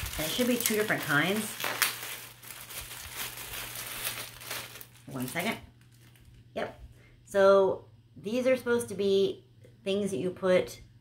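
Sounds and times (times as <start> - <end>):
plastic bag crinkling: 0.0 - 6.5.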